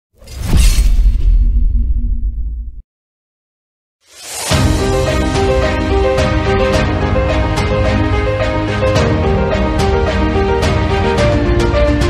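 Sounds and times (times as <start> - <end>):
whoosh and crash effect: 0.2 - 2.8.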